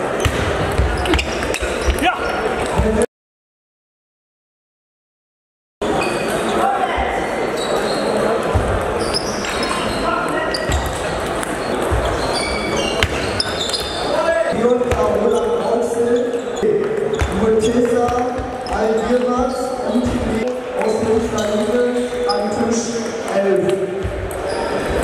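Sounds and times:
people talking: 14.0 - 25.0.

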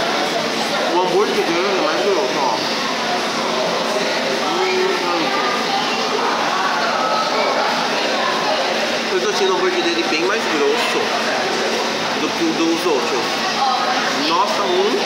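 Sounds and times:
restaurant hubbub: 0.0 - 15.0.

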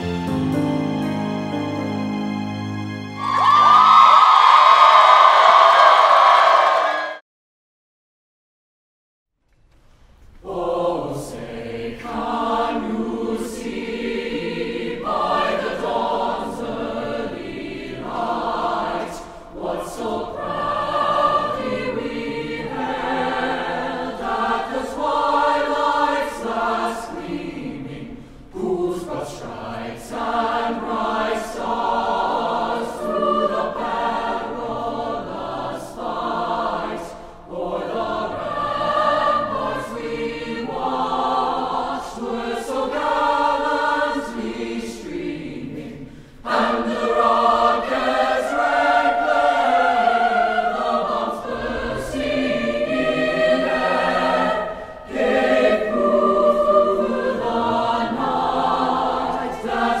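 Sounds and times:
choir singing held notes: 0.0 - 7.2, 10.4 - 60.0
choir breathing: 3.2 - 7.2, 10.4 - 60.0.

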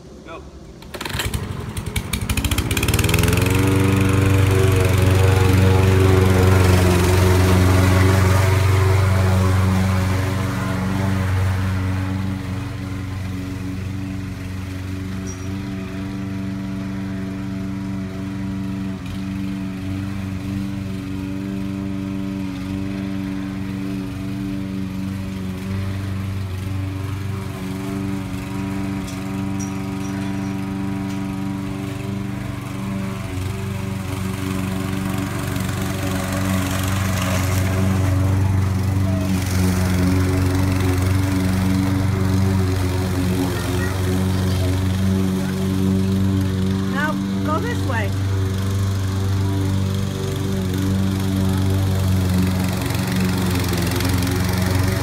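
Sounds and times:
lawn mower engine running: 0.0 - 55.0.

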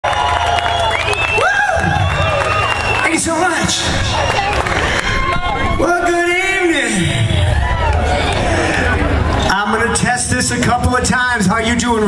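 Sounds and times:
people whooping: 0.0 - 6.2, 7.2 - 9.1
crowd cheering and clapping: 0.0 - 9.6
long high whistle: 0.6 - 3.1.

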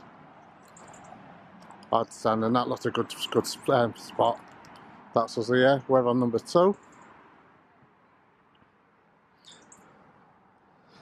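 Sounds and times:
faint high-pitched chirp: 9.4 - 10.0.

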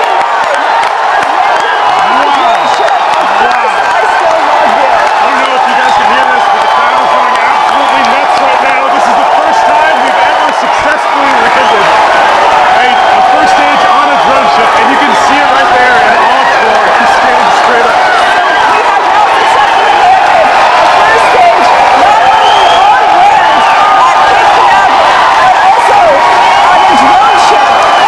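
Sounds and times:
large crowd cheering and shouting: 0.0 - 28.0.

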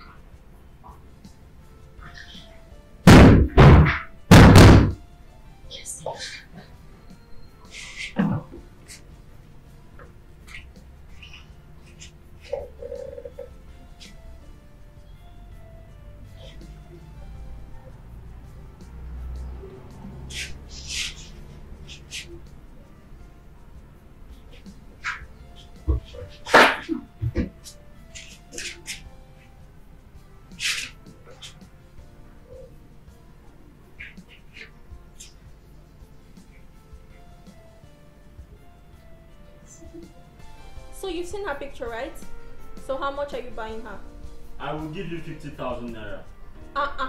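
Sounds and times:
faint background music: 0.0 - 47.0
short hissing sounds: 30.5 - 31.0.

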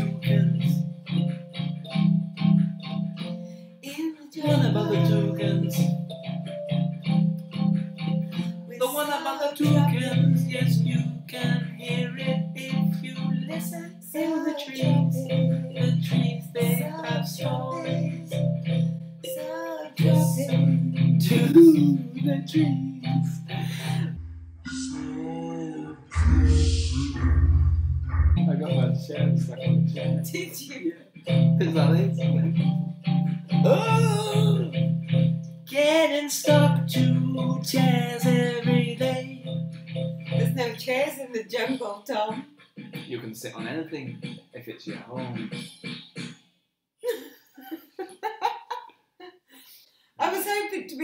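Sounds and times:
electronic keyboard chords: 0.0 - 3.8, 4.4 - 14.0, 14.7 - 25.4, 26.0 - 41.1
two voices singing: 4.4 - 6.0, 8.8 - 18.5, 19.3 - 27.6, 33.6 - 34.7, 35.7 - 39.4
drum machine beat: 14.7 - 25.2, 26.1 - 46.6.

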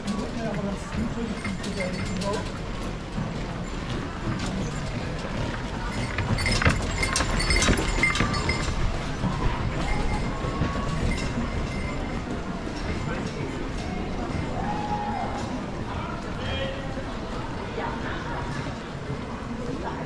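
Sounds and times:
footsteps: 0.0 - 15.8
clicks and clinks: 5.5 - 12.2.

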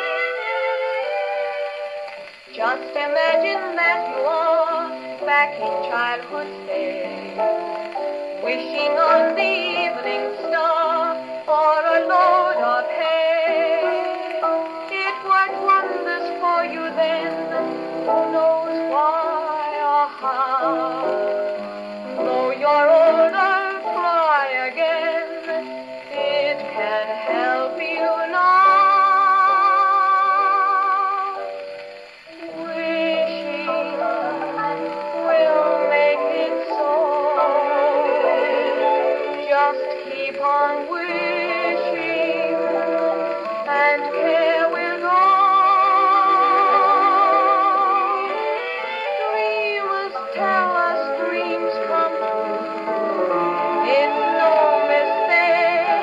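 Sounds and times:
dance-band song on gramophone: 0.0 - 56.0.

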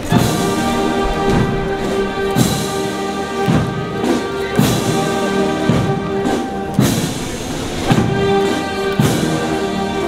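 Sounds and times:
drum beat: 0.0 - 10.0
slow brass band music: 0.0 - 10.0.

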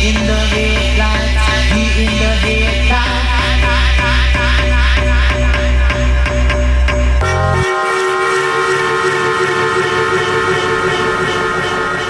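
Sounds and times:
kick drum and bassline: 0.0 - 7.3, 9.1 - 12.0
sustained synth chord: 0.1 - 12.0.

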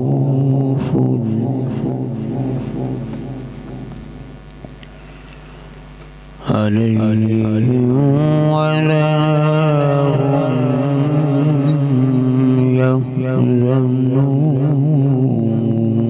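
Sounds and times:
man reciting melodically through microphone: 0.0 - 4.2, 6.4 - 16.0.

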